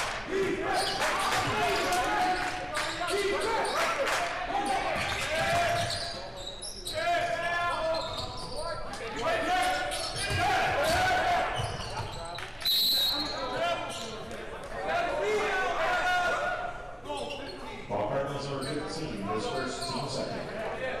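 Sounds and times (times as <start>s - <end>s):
sneakers squeaking: 4.9s - 8.9s, 9.8s - 14.2s, 17.1s - 17.9s
referee's whistle blast: 12.6s - 13.4s.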